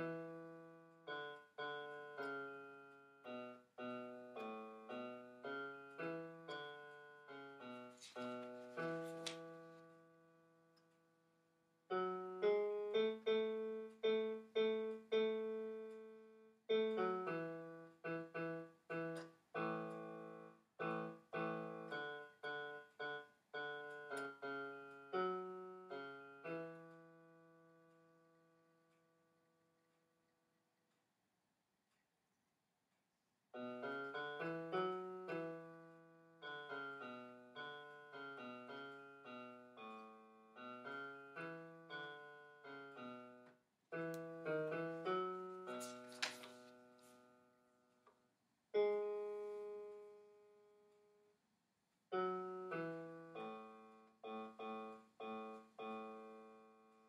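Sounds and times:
digital piano playing notes: 0.0 - 10.4, 11.9 - 28.4, 33.6 - 47.4, 48.8 - 50.8, 52.1 - 57.0.

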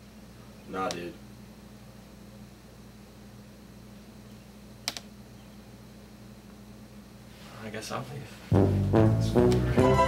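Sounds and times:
sharp clicks: 4.8 - 5.1.

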